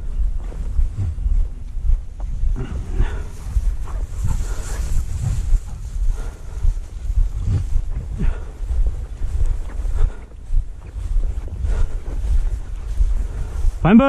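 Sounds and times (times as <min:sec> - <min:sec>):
footsteps through dry grass: 0:00.0 - 0:14.0
wind buffeting microphone: 0:00.0 - 0:14.0.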